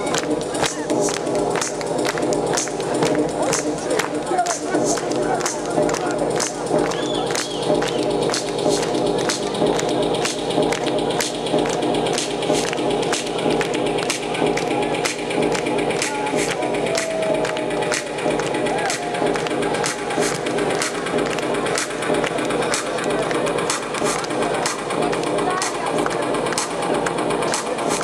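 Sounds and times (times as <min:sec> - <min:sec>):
electronic dance music: 0:00.0 - 0:28.0.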